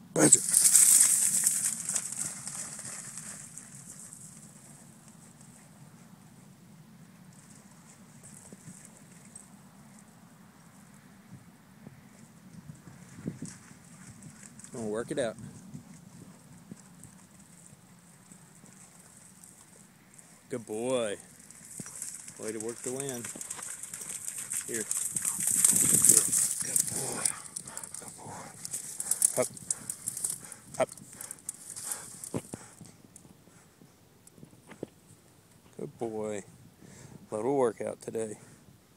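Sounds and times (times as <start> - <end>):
rapid rustling and clicks: 0.4 - 5.6, 21.3 - 32.9
wind rumble on microphone: 11.2 - 17.2, 24.8 - 35.2
dog panting: 26.2 - 33.8.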